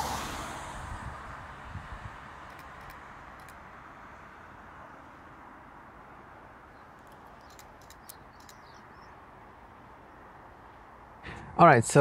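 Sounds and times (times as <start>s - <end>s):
faint bird chirps: 6.7s - 9.2s.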